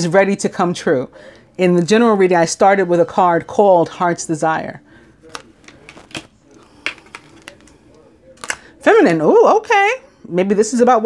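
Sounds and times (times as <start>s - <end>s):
cards clicking and tapping on table: 5.3s - 7.7s.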